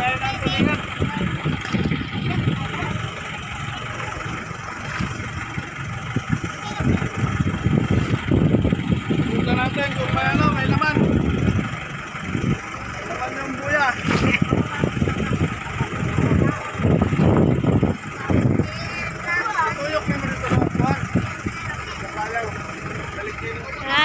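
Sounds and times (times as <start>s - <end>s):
boat engine drone: 0.0s - 24.0s
voices talking: 0.0s - 24.0s.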